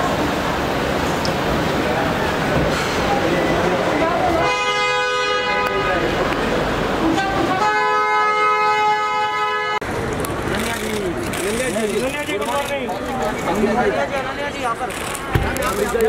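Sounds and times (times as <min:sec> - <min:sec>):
car horn blasts: 0:04.4 - 0:06.0, 0:07.2 - 0:09.8.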